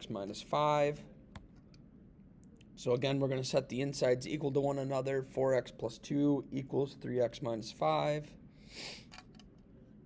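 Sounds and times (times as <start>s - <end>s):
man talking: 0.0s - 1.2s, 2.8s - 8.4s.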